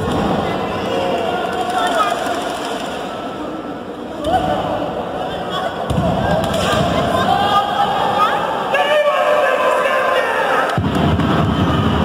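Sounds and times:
spectators shouting: 4.2s - 12.0s.

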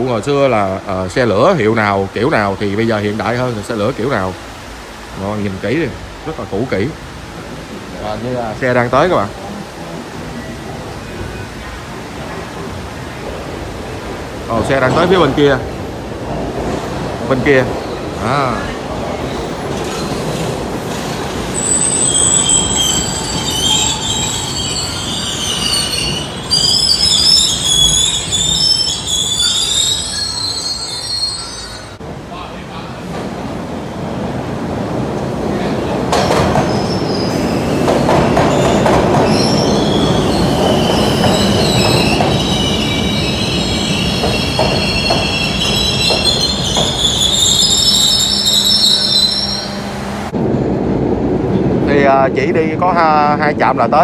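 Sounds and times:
train rumble: 0.0s - 54.0s
train wheels squealing: 19.2s - 32.0s, 36.2s - 50.0s.

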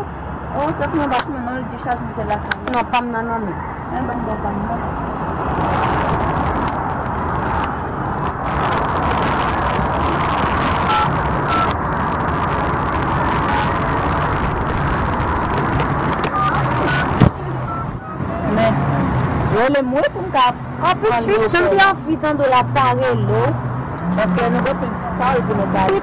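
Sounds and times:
street traffic noise: 0.0s - 26.0s
touch-tone keypad beeps: 10.9s - 11.7s, 16.4s - 18.2s.

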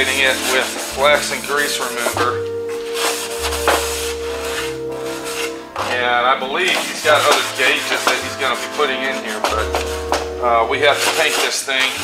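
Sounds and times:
background music: 0.0s - 12.0s
pad scrubbing plastic: 0.0s - 12.0s.

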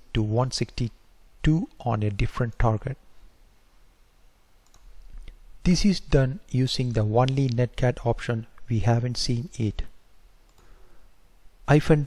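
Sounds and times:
low room hiss: 0.0s - 12.0s
computer keyboard clicks: 4.6s - 4.9s, 10.5s - 10.7s.

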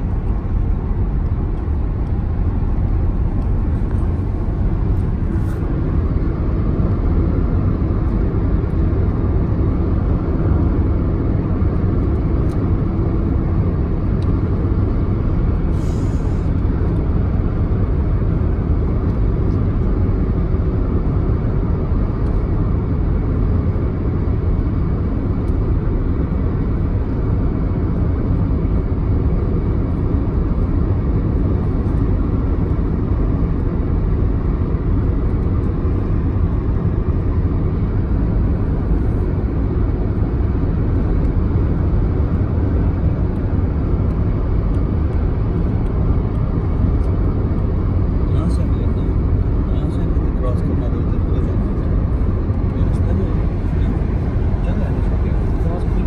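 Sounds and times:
car road and engine noise: 0.0s - 56.0s.

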